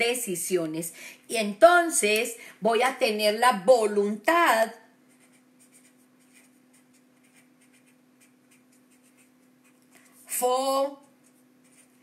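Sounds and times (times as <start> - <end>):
steady low hum: 4.8 - 12.0
pen scratching on paper: 5.1 - 9.8, 11.0 - 12.0.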